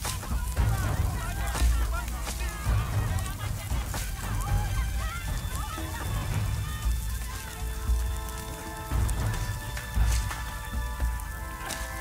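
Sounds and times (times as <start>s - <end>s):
film music over sound system: 0.0s - 12.0s.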